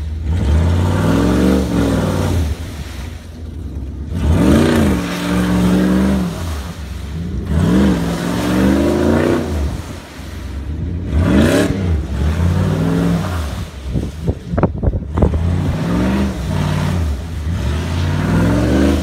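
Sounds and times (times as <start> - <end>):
engine revving hard: 0.0 - 3.0, 4.1 - 10.2, 10.8 - 14.4, 15.0 - 19.0.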